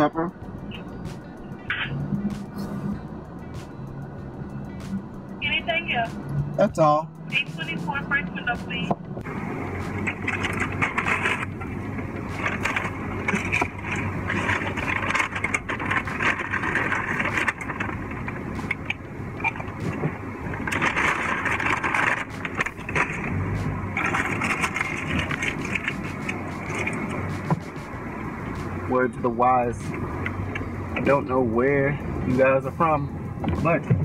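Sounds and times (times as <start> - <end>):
car engine idling: 0.0 - 34.0
rustling and clicking in seat: 9.2 - 28.8.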